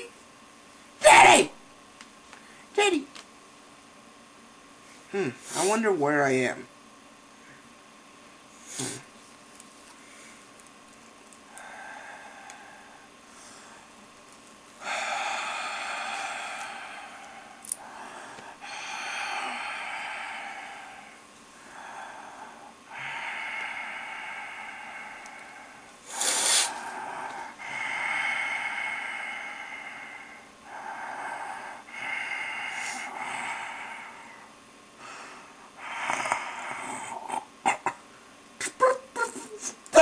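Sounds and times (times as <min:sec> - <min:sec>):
person making grunting noises: 0:05.1 - 0:05.8, 0:38.6 - 0:40.0
person breathing noisily: 0:11.5 - 0:13.9, 0:14.8 - 0:37.4.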